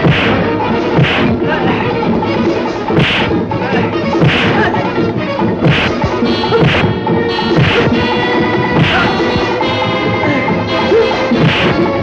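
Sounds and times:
punch sound effects: 0:00.0 - 0:01.5, 0:02.9 - 0:03.5, 0:04.2 - 0:04.8, 0:05.6 - 0:09.5, 0:11.3 - 0:12.0
background music score: 0:00.0 - 0:12.0.

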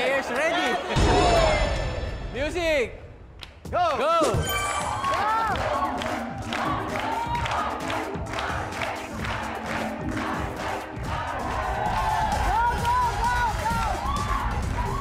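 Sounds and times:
crowd shouting and cheering: 0:00.0 - 0:03.1, 0:03.7 - 0:15.0
upbeat dance music: 0:04.7 - 0:15.0.

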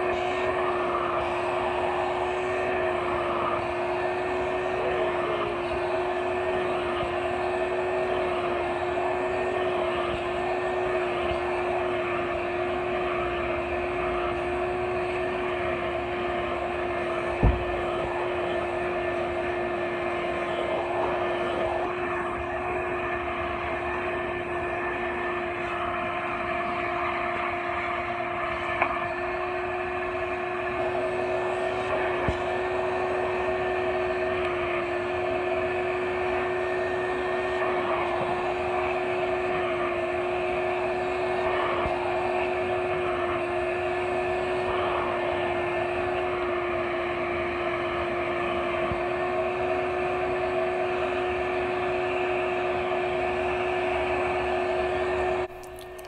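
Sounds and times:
shop vac motor whining: 0:00.0 - 0:56.0.

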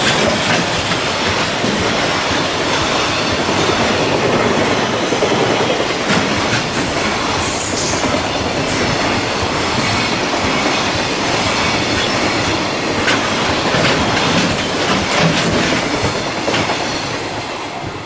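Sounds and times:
clickety-clack over rail joints: 0:00.0 - 0:18.0
train wheels rumbling on rail: 0:00.0 - 0:18.0.

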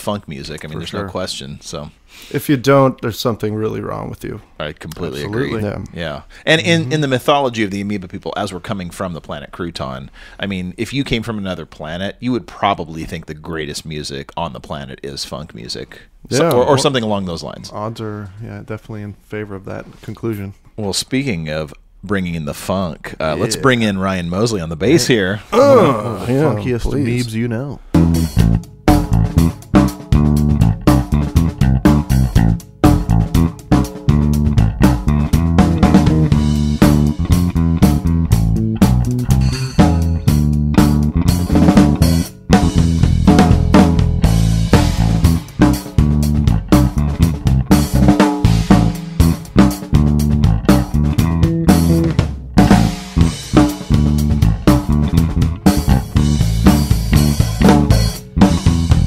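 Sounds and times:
funk electric bass line: 0:23.2 - 0:23.8, 0:27.8 - 0:59.0
funk drum beat: 0:24.8 - 0:59.0.

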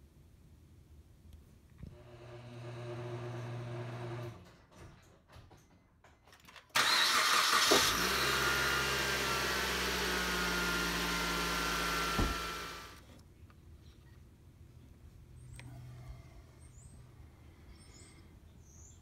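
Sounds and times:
car engine starting and idling: 0:06.8 - 0:13.0.

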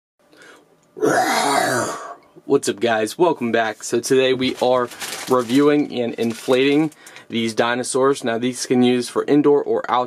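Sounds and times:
man clearing his throat: 0:01.0 - 0:02.2.

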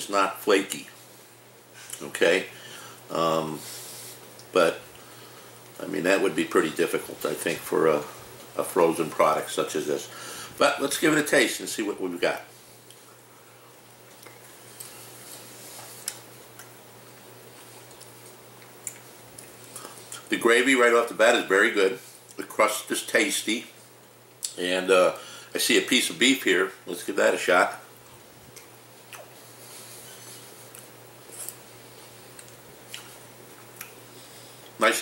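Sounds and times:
low steady hum: 0:00.0 - 0:35.0
quiet chewing: 0:12.7 - 0:13.2, 0:14.0 - 0:20.3, 0:27.9 - 0:34.8.

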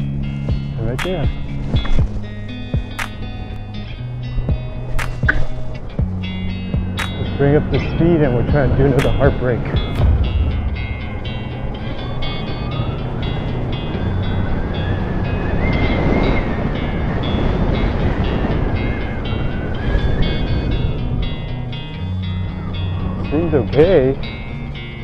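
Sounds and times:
plucked background music: 0:00.0 - 0:14.7
rushing noise: 0:09.0 - 0:15.4.

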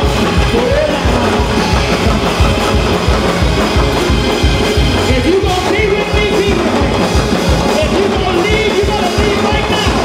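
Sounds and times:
drum kit fast beat: 0:00.0 - 0:10.0
gospel band playing: 0:00.0 - 0:10.0.

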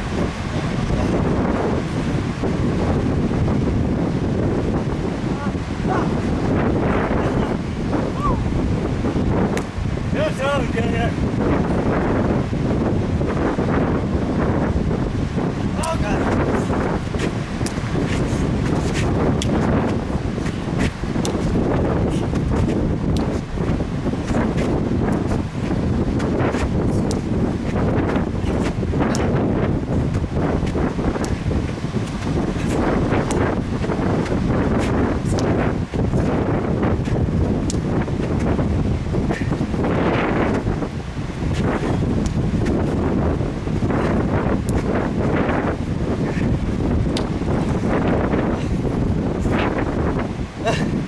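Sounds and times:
wind buffeting microphone: 0:00.0 - 0:51.0.

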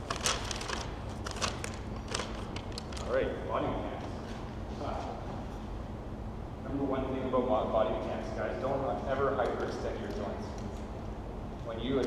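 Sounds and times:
paper or plastic crinkling: 0:00.0 - 0:03.2.

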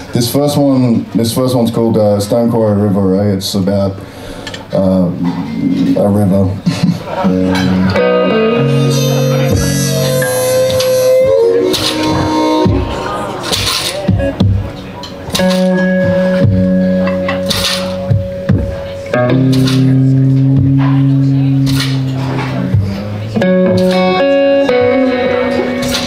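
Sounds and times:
electric guitar playing blues: 0:06.9 - 0:26.0
harmonica notes: 0:07.2 - 0:26.0.

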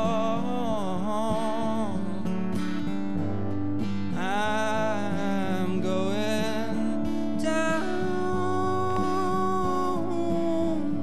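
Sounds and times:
man singing: 0:00.0 - 0:02.8, 0:04.1 - 0:11.0
strummed acoustic guitar: 0:00.0 - 0:11.0.

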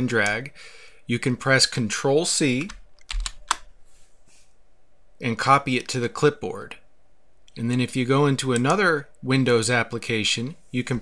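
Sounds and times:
computer keyboard key clicks: 0:03.0 - 0:03.6.

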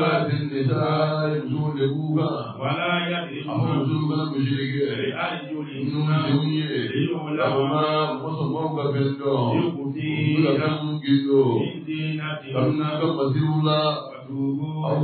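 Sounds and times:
men chanting: 0:00.0 - 0:15.0.

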